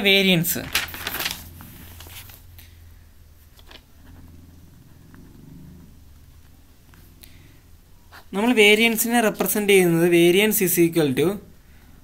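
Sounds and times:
steady low hum: 0.6 - 8.6.

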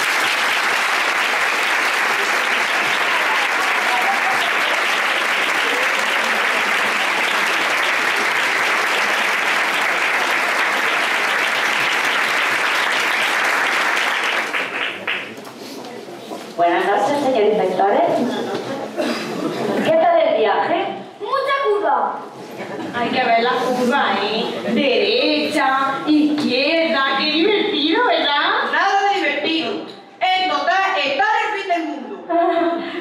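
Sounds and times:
audience applauding: 0.0 - 15.6.

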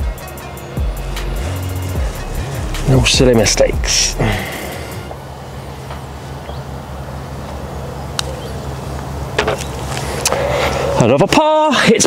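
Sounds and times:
low motor hum: 0.8 - 10.1.

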